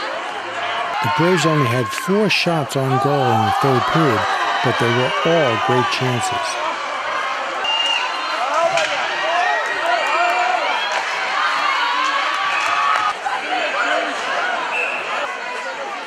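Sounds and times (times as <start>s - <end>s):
crowd shouting: 0.0s - 16.0s.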